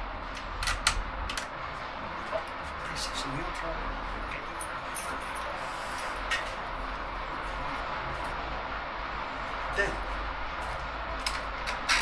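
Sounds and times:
construction work noise: 0.0s - 12.0s.

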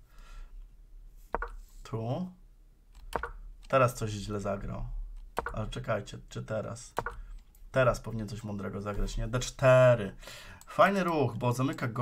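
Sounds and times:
computer key click: 3.0s - 3.4s, 5.4s - 5.6s.

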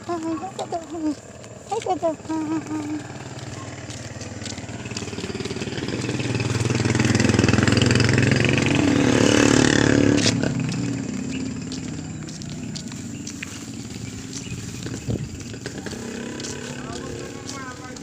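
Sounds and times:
motor vehicle passing by: 0.0s - 18.0s.

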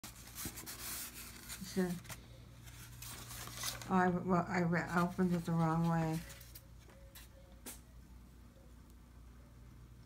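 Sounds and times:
tissue paper rustling: 0.0s - 7.3s.

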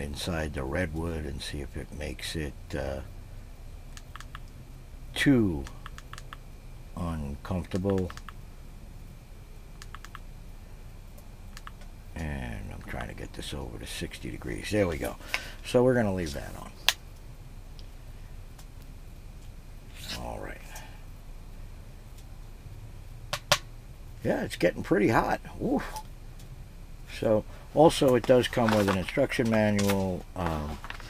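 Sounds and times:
faint steady hiss: 0.0s - 31.0s.

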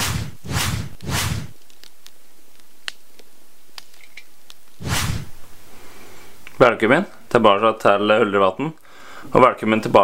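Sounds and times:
whooshing sweep: 0.0s - 1.6s, 4.8s - 5.5s.

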